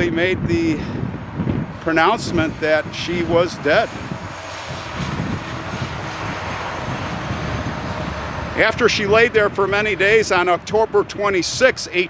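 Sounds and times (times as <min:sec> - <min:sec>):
distant vehicle engine passing: 0:00.8 - 0:12.0.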